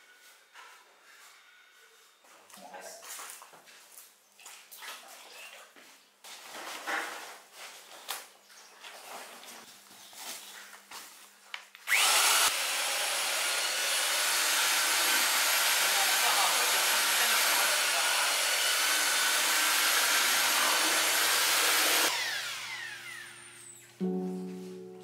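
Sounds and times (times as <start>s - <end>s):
electric paddle mixer churning plaster: 11.9s - 23.5s.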